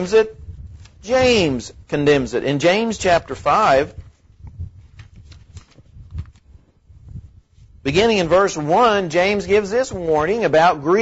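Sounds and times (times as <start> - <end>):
paper pages rustling: 0.0 - 10.5.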